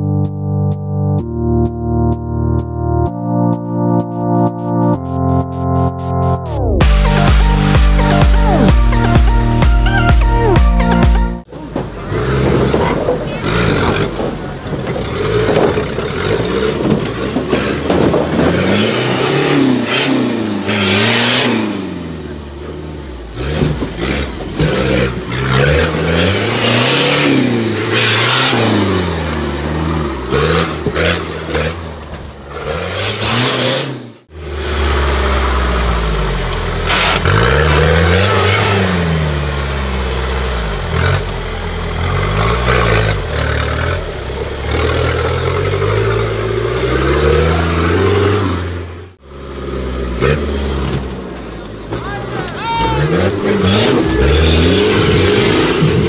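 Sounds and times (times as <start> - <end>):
off-road vehicle engine revving: 11.4 - 56.0.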